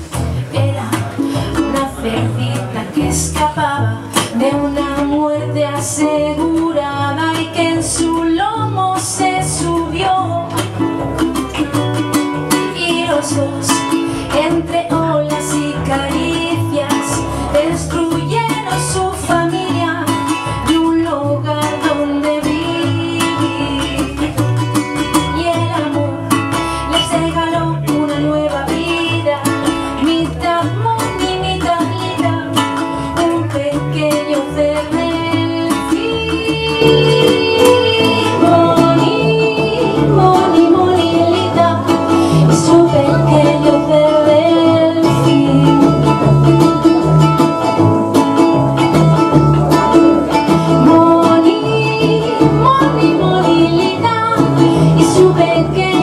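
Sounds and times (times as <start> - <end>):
ukulele: 0.0 - 56.0
walking double bass: 0.0 - 56.0.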